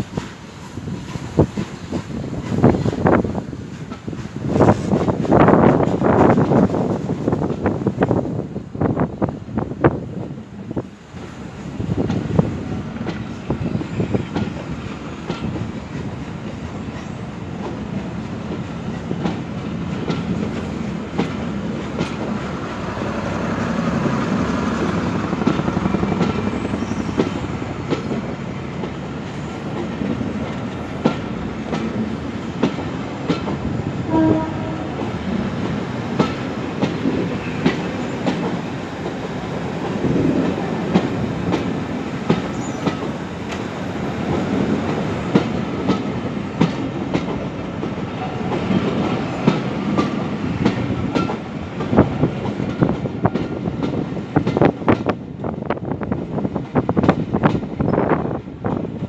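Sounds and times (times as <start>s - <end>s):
wheels clicking over rail joints: 0.0s - 8.0s, 12.0s - 55.9s
train rumbling past: 0.0s - 59.0s.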